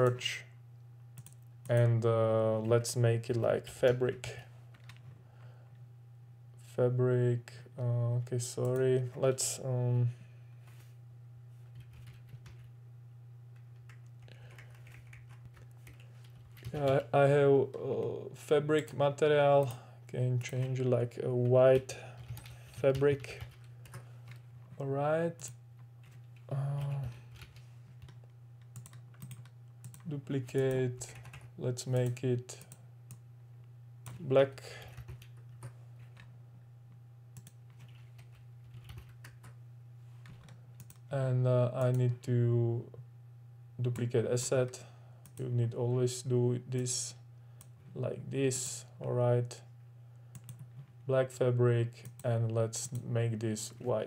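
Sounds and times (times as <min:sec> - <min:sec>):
low electrical hum: 0:00.0 - 0:54.0
keyboard typing: 0:11.7 - 0:12.7, 0:13.6 - 0:17.1, 0:21.8 - 0:24.4, 0:25.4 - 0:32.2, 0:37.4 - 0:39.6, 0:50.3 - 0:50.9
faint computer keyboard keystrokes: 0:25.4 - 0:30.1, 0:40.2 - 0:41.0, 0:50.3 - 0:50.9.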